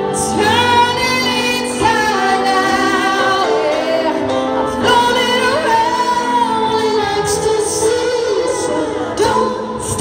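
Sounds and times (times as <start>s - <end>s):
musical accompaniment: 0.0s - 10.0s
woman singing: 0.0s - 10.0s.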